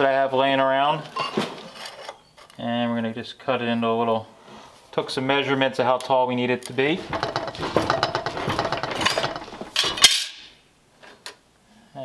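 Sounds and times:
steel scrap clattering: 0:07.0 - 0:10.4.

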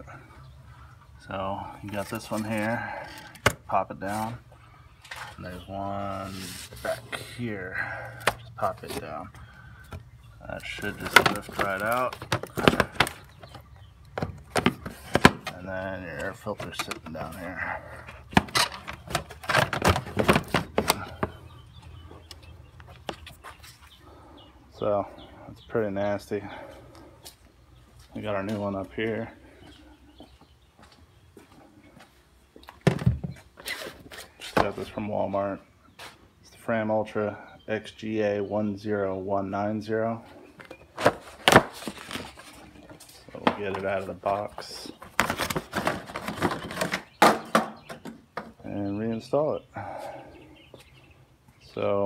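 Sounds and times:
paper filter rustling and scraping: 0:05.0 - 0:07.4
cardboard rustling and scraping: 0:06.1 - 0:07.1, 0:41.0 - 0:47.1.

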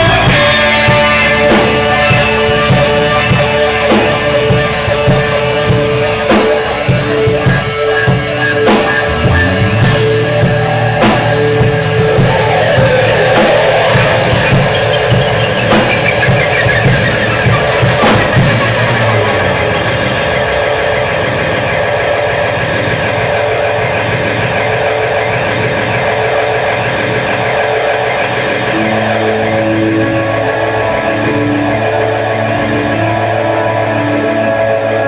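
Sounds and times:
drum kit with crashing cymbals: 0:00.0 - 0:23.7
electric guitars: 0:00.0 - 0:35.0.

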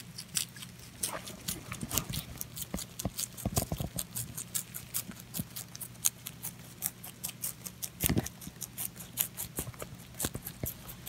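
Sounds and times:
rabbit chewing crunchy stalks: 0:00.0 - 0:11.0.

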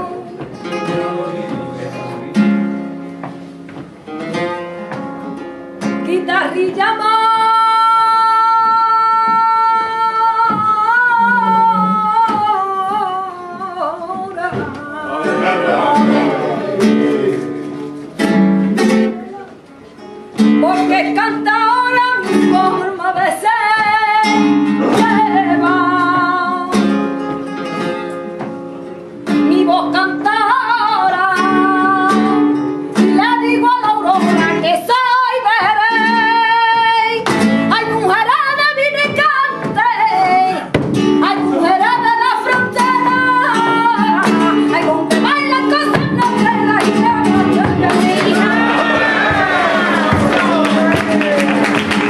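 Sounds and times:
flamenco guitar: 0:00.0 - 0:52.0
woman singing flamenco: 0:00.0 - 0:52.0.

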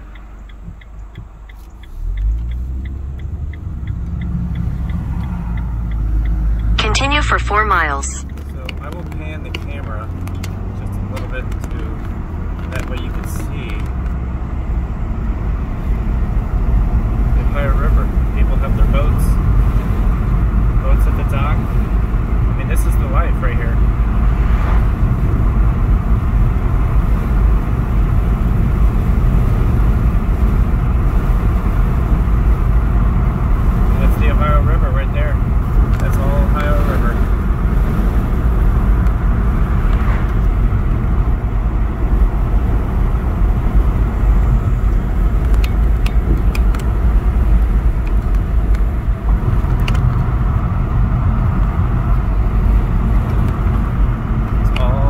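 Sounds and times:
car cabin road noise: 0:00.0 - 0:55.0.

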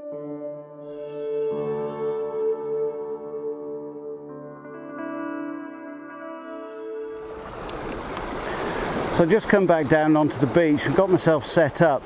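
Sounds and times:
ambient music note: 0:00.0 - 0:07.5
waves washing over pebbles: 0:07.2 - 0:12.0.

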